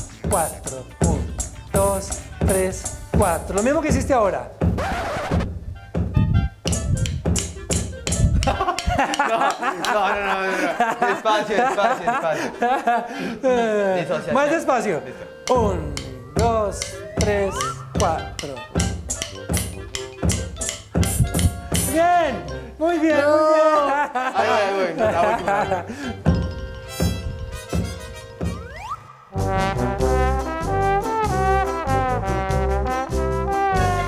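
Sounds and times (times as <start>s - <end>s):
hi-hat strikes: 0.0s - 4.8s, 6.7s - 9.6s, 15.5s - 22.1s
electronic kick drum: 0.2s - 4.8s, 5.4s - 9.0s, 15.5s - 22.0s
electronic drum hits: 16.4s - 22.0s.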